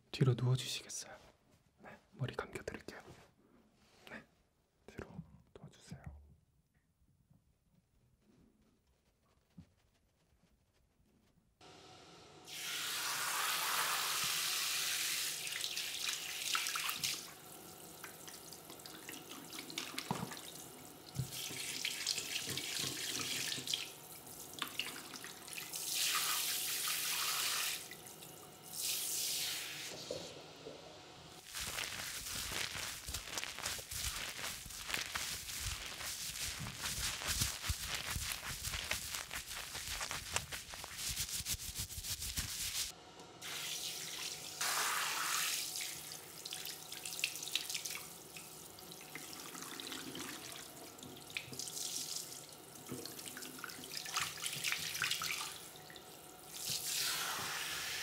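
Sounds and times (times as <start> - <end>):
water running from a tap: 12.5 - 30.2, 31.4 - 58.0.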